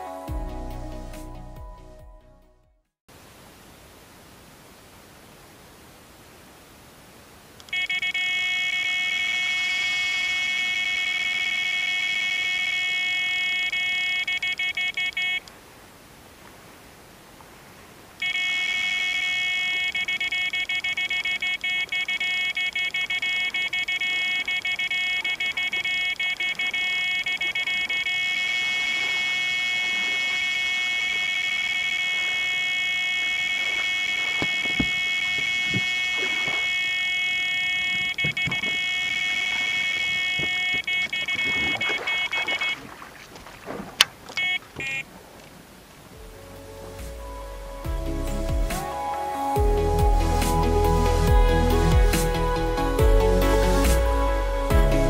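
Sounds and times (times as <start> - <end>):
short beeps: 7.7 - 15.5, 18.2 - 42.9, 44.3 - 45.1
bite alarm steady high tone: 18.2 - 42.8.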